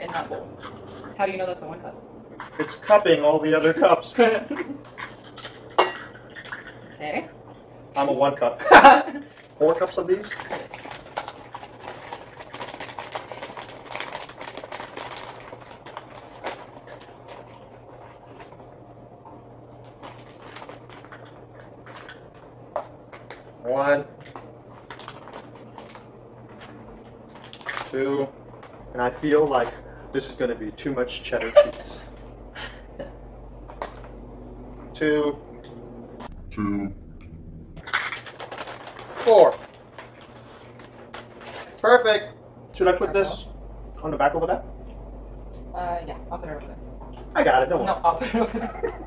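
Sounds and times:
low room hum: 0.0 - 49.0
plastic bag crinkling: 9.2 - 18.6, 23.1 - 30.0, 37.8 - 42.0.

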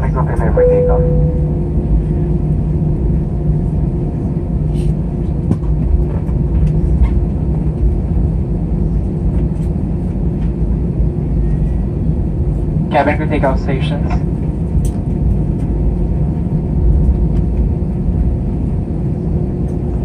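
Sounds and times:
aircraft cabin engine rumble: 0.0 - 20.0.

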